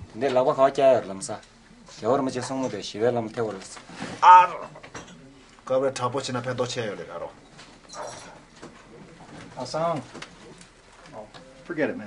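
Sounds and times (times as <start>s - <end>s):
film dialogue: 4.0s - 4.9s.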